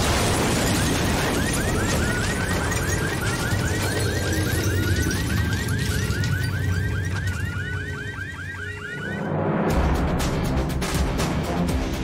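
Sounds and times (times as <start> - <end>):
car alarm rising sweeps: 0.6 - 9.9.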